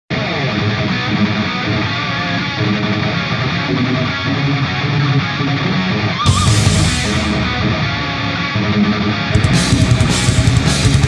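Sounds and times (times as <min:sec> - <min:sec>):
rock music with electric guitar: 0:00.1 - 0:11.0.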